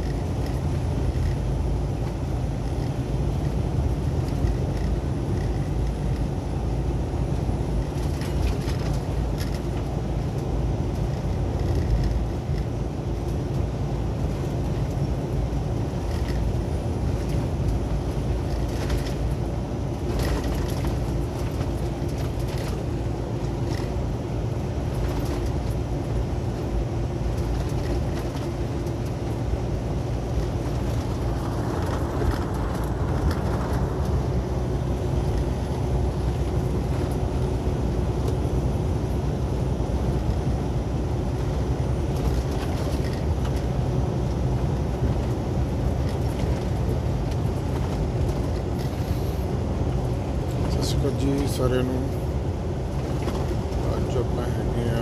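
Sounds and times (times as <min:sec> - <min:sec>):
truck engine drone: 0:00.0 - 0:55.0
tyre and road noise: 0:00.0 - 0:55.0.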